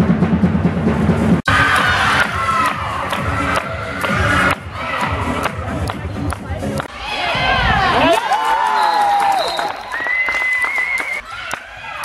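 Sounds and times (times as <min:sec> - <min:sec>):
women shouting and cheering: 0:01.5 - 0:05.8, 0:06.9 - 0:10.2
hand claps: 0:08.6 - 0:12.0.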